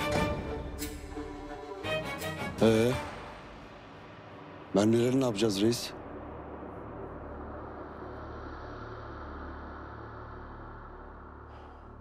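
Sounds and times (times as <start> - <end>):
low dramatic score drone: 0.0 - 12.0.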